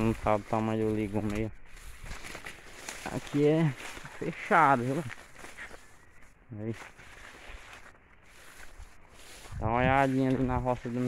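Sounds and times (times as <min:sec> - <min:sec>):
rustling of maize plants: 0:00.0 - 0:11.0
soft footsteps: 0:00.0 - 0:11.0.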